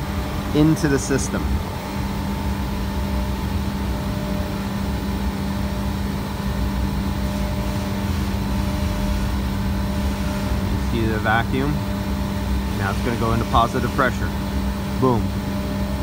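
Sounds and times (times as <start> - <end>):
machine hum with low rumble: 0.0 - 16.0.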